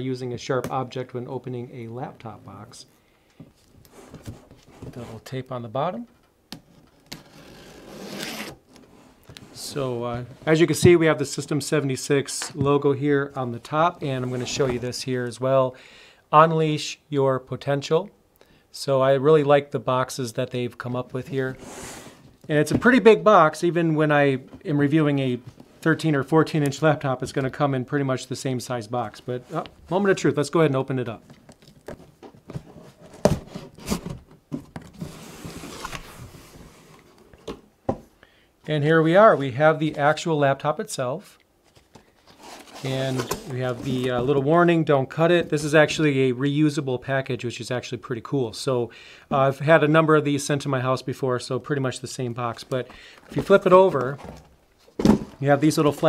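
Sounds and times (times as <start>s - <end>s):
cardboard rubbing and sliding: 14.1s - 15.0s, 21.5s - 22.3s, 34.9s - 37.2s, 42.2s - 44.3s.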